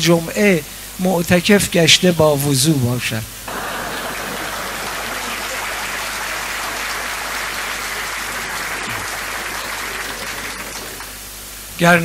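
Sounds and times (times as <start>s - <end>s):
audience applauding: 3.5s - 11.3s.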